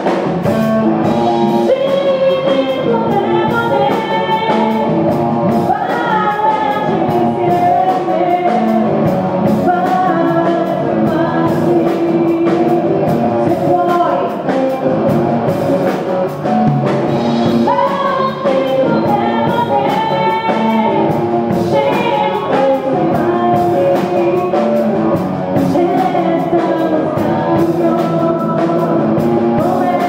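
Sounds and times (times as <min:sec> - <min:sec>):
drum kit beat: 0:00.0 - 0:30.0
electric guitar: 0:00.0 - 0:30.0
woman singing: 0:01.4 - 0:14.9, 0:17.3 - 0:30.0.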